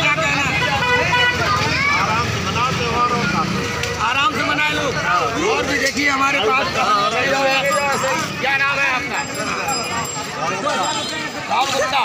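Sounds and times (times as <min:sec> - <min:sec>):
busy street noise: 0:00.0 - 0:12.0
voices talking: 0:00.0 - 0:12.0.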